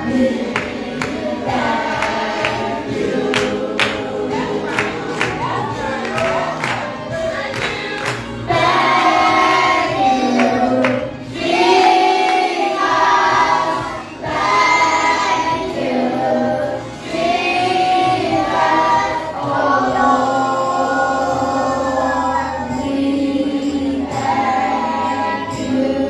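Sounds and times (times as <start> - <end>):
children's choir singing: 0.0 - 26.0.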